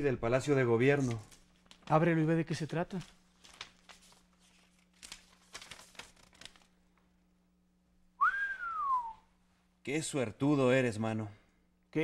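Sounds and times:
paper rustling: 0:00.8 - 0:07.1
man whistling: 0:08.2 - 0:09.3.

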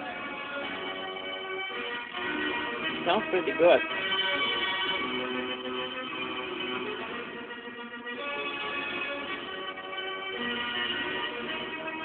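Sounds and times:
music with sustained notes: 0:00.0 - 0:12.0.

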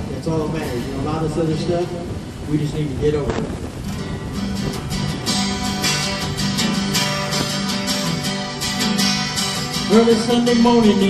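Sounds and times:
acoustic guitar strumming chords: 0:03.4 - 0:11.0.

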